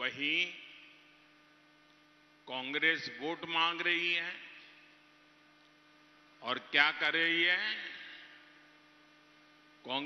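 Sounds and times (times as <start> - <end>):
man's amplified speech: 0.0 - 0.8, 2.4 - 4.6, 6.4 - 8.4
electrical mains hum: 0.0 - 10.0.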